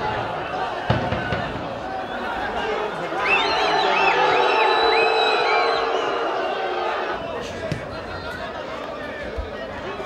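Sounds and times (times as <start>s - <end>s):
stadium crowd cheering and shouting: 0.0s - 10.0s
high whistles: 3.2s - 6.7s.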